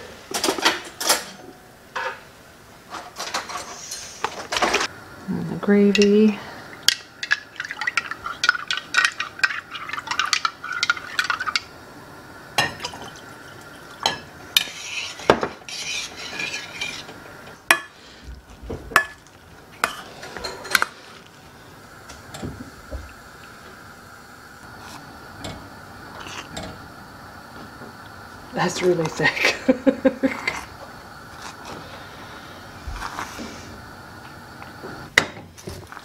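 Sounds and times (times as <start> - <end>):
spatula stirring gravy: 7.2 - 11.6, 14.6 - 17.2.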